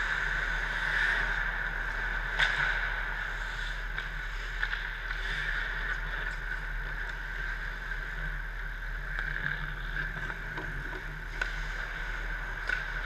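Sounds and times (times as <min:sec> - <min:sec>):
hockey sticks and skates scraping: 0:00.0 - 0:08.1, 0:08.8 - 0:13.0
steady arena hum: 0:00.0 - 0:13.0.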